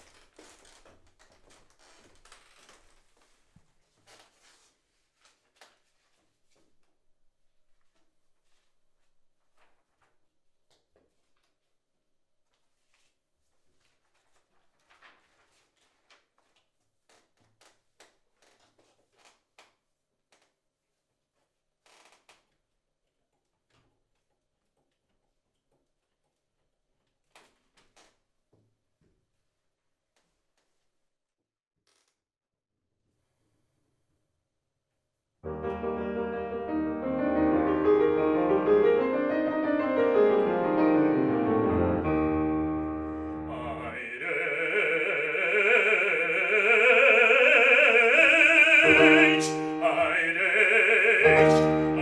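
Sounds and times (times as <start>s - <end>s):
shuffling: 7.7s - 10.2s, 43.0s - 52.0s
sheet music rustling: 12.6s - 16.6s, 41.8s - 52.0s.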